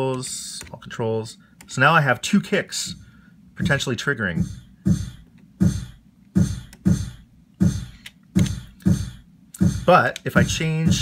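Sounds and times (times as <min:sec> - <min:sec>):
kick drum thuds with hiss: 0:04.4 - 0:11.0.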